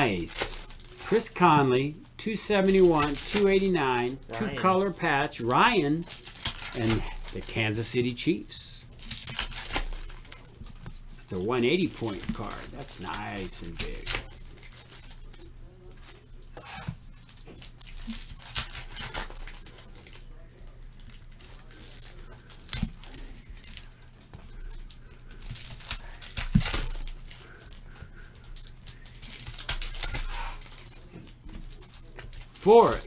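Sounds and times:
cards and wrappers crinkling: 0.0 - 33.0
low electrical hum: 0.0 - 33.0.

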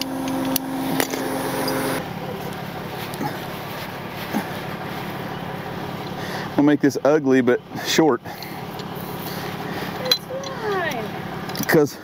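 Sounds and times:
truck engine idling: 0.0 - 12.0.

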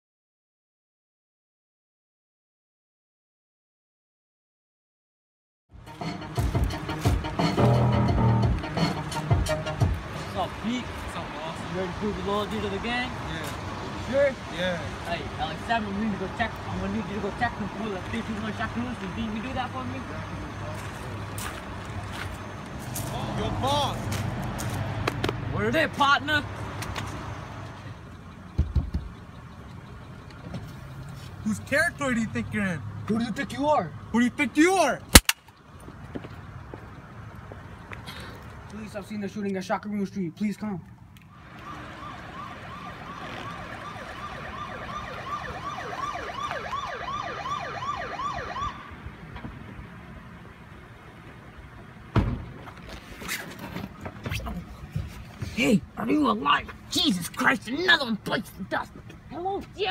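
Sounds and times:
police siren wailing: 41.3 - 49.0.

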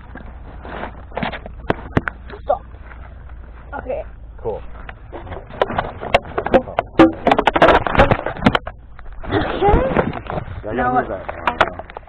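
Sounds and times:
handling clicks and knocks: 4.8 - 9.3.

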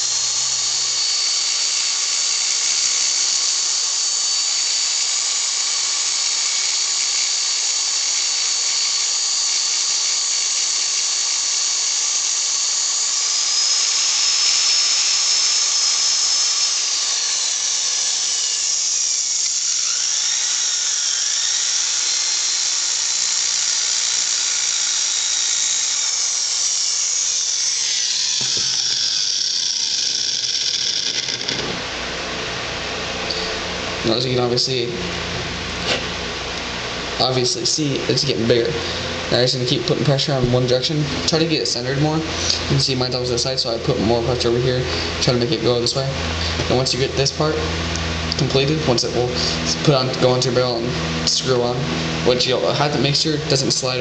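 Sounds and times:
power drill whining: 0.0 - 32.2.

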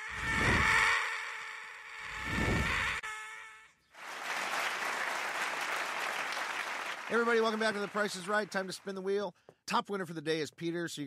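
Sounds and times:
sustained pitched noise: 0.0 - 3.0
studio audience applauding: 4.0 - 9.0.

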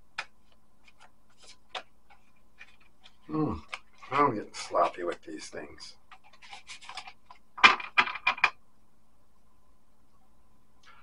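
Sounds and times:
cards shuffling: 0.1 - 5.4, 6.1 - 8.5.

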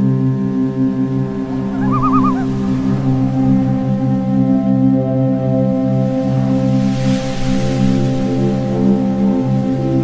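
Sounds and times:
sustained drone chord: 0.0 - 6.8
warbling high tone: 1.4 - 2.6.

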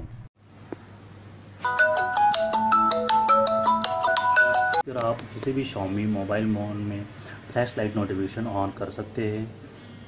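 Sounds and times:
smartphone ringtone: 1.6 - 4.8.

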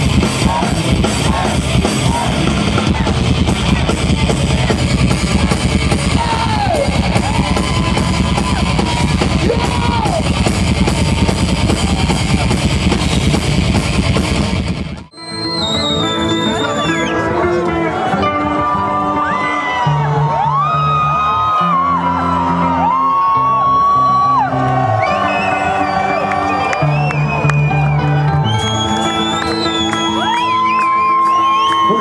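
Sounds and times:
live heavy metal band: 0.0 - 32.0
sliding guitar notes: 15.2 - 20.8.

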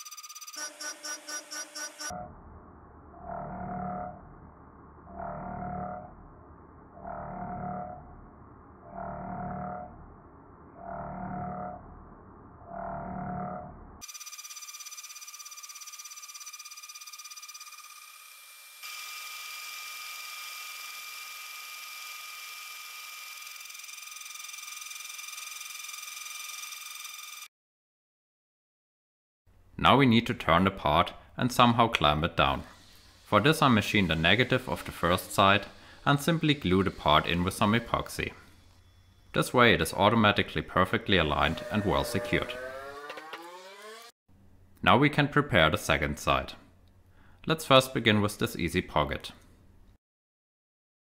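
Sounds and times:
high spindle whine with hiss: 32.6 - 43.1
end mill cutting aluminium: 32.8 - 38.6, 40.8 - 44.1.

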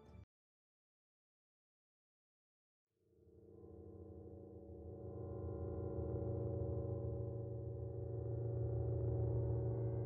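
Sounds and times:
electronic drone: 3.6 - 10.0.

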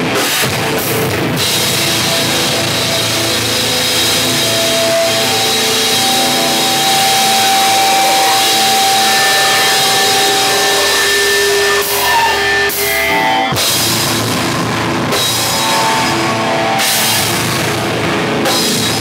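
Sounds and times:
distorted hardcore band playing: 0.0 - 19.0.

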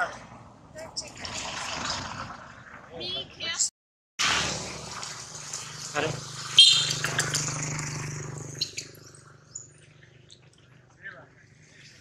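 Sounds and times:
monkey squealing: 6.6 - 7.5.

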